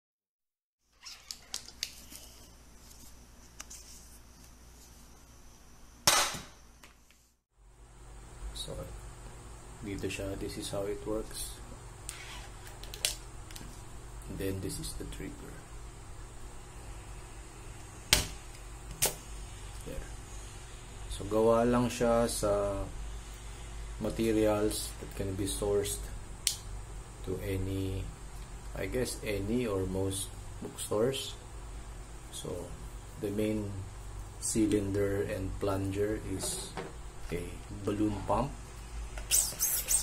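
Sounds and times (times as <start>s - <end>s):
faint rubbing with squeak: 0.9s - 2.6s, 12.1s - 12.7s, 39.2s - 40.0s.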